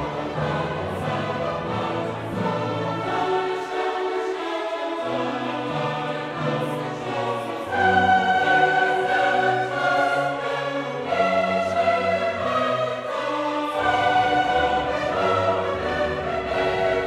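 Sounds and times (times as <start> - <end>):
choral and orchestral music: 0.0 - 17.0.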